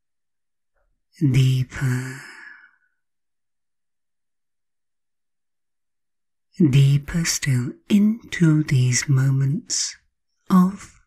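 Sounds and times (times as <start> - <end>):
woman speaking softly: 1.2 - 2.7, 6.6 - 11.0.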